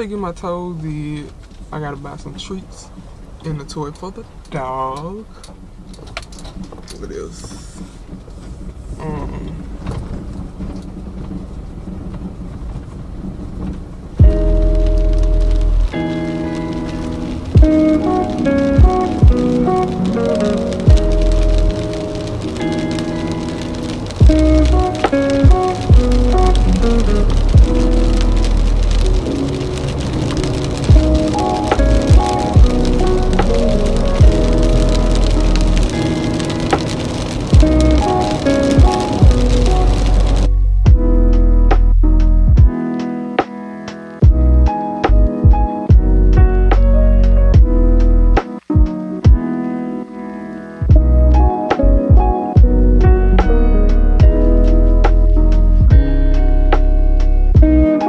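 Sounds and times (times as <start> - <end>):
rain on a car: 0.0 - 58.0
music with heavy bass beat: 14.2 - 49.7, 50.8 - 58.0.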